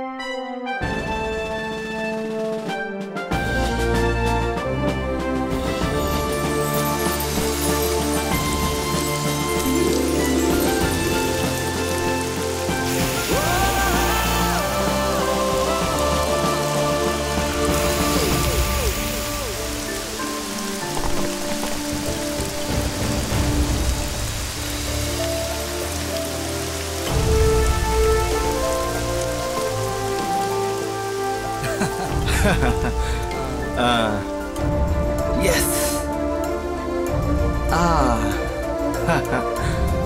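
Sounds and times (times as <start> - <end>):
film score with low bass: 0.0 - 40.0
rain falling on pavement: 1.0 - 40.0.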